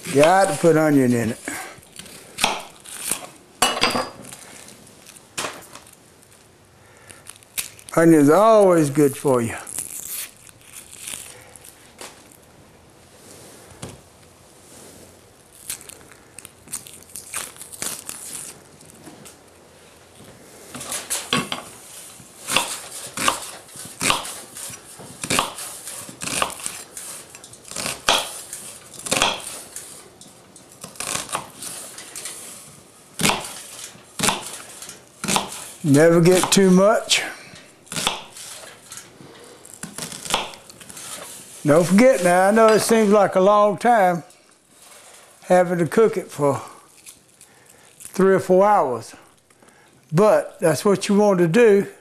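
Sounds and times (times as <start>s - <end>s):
onion skin crackling: 0.0s - 3.6s, 4.2s - 12.5s, 15.1s - 36.8s, 37.7s - 43.4s, 46.2s - 48.5s
knife chopping on plastic board: 22.5s - 24.4s, 38.0s - 38.4s.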